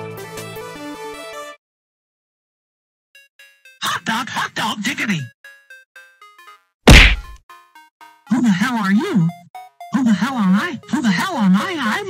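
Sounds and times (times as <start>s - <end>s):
cartoon punch whack: 6.9s - 7.4s
soft background melody: 7.5s - 12.0s.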